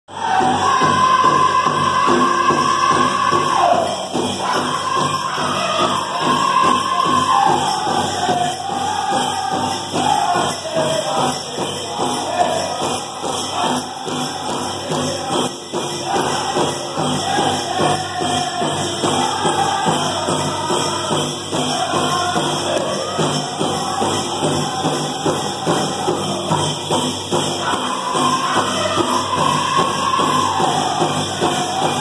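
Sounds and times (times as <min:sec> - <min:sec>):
men singing high held notes: 0:00.1 - 0:32.0
steady drumbeat: 0:00.1 - 0:32.0.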